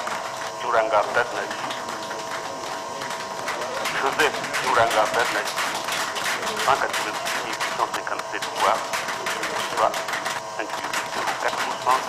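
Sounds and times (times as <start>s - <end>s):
rapid clicking: 0.0s - 12.0s
man reading aloud: 0.6s - 2.2s, 4.0s - 5.5s, 6.6s - 8.9s, 10.6s - 12.0s.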